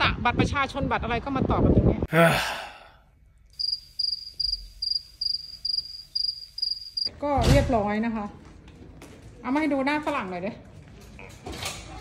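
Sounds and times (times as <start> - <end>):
cricket chirping: 3.6 - 7.1.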